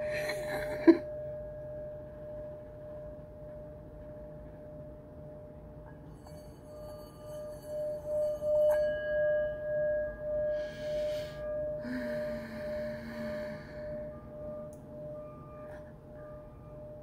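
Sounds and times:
mallet contact ring: 0:00.0 - 0:17.0
singing bowl ringing: 0:00.0 - 0:17.0.

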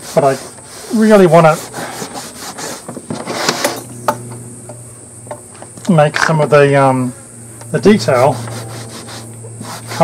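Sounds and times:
cloth rubbing on leather: 0:00.0 - 0:03.8, 0:08.1 - 0:10.0.

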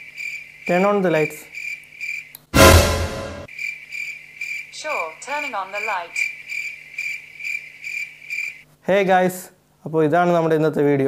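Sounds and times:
cricket chirping: 0:00.0 - 0:02.4, 0:03.5 - 0:08.6.

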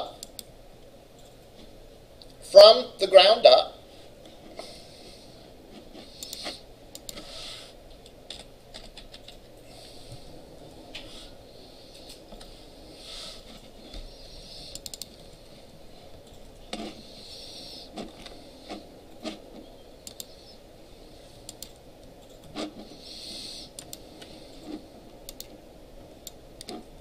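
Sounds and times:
room noise: 0:00.0 - 0:27.0
mouse and keyboard clicks: 0:14.7 - 0:15.4, 0:18.0 - 0:20.4, 0:23.7 - 0:25.6.

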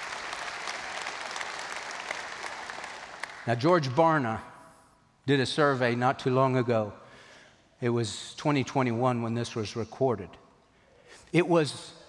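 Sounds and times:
crowd applauding: 0:00.0 - 0:03.7.

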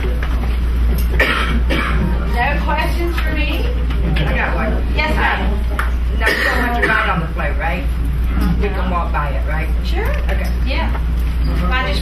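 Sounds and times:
steady low hum: 0:00.0 - 0:12.0
person coughing: 0:01.2 - 0:02.1, 0:06.2 - 0:07.2.

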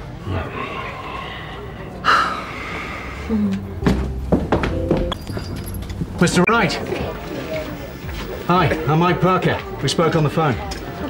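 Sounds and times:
person sighing: 0:03.2 - 0:03.8.

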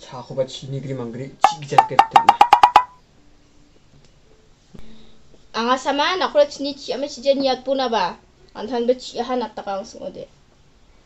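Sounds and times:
short sharp pitched taps: 0:01.5 - 0:02.9.

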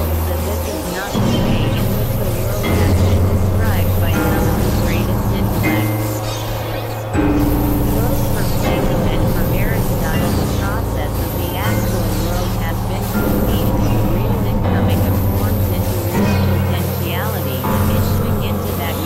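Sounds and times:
gliding chirping electronic tones: 0:00.0 - 0:19.0
low synthesizer drones: 0:00.0 - 0:19.0.

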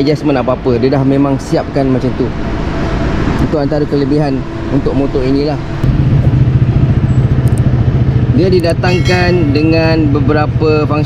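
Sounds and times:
motorcycle engine idling: 0:05.8 - 0:11.0.

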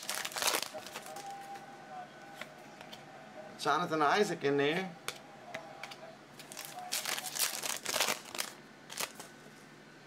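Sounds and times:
trading cards rustling: 0:00.0 - 0:01.5, 0:06.4 - 0:09.4.

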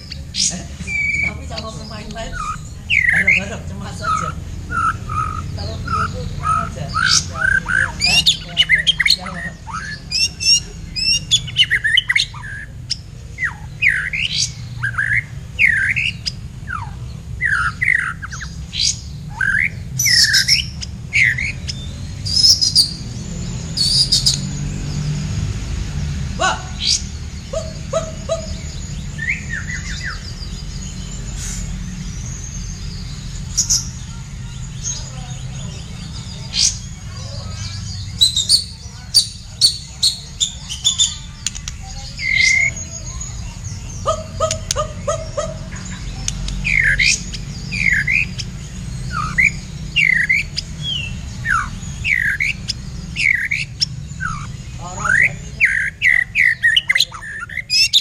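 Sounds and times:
songbird singing whistles and trills: 0:00.0 - 0:25.4, 0:26.4 - 0:58.0.

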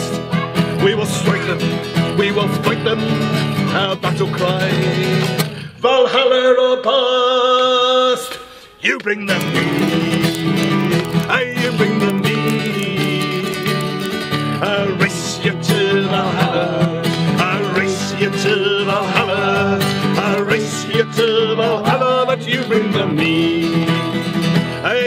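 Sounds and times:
acoustic guitar strumming: 0:00.0 - 0:05.7, 0:09.2 - 0:25.0
group singing folk song: 0:00.6 - 0:25.0.

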